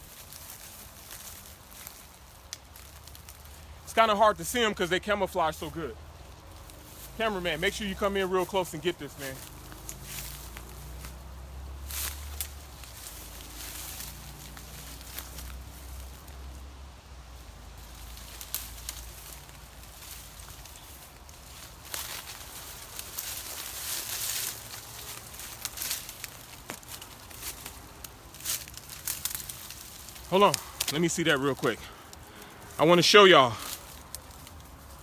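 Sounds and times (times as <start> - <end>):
branches and leaves rustling: 0.0 - 35.0
twigs cracking: 0.0 - 35.0.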